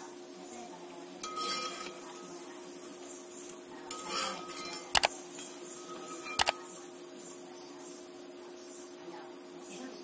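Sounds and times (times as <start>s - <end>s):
frying in hot oil: 0.0s - 10.0s
metal spatula scraping pan: 1.2s - 2.5s, 3.9s - 6.8s.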